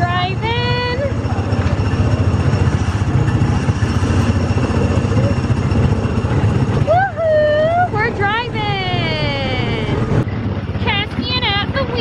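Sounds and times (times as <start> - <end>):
small engine rumbling: 0.0 - 12.0.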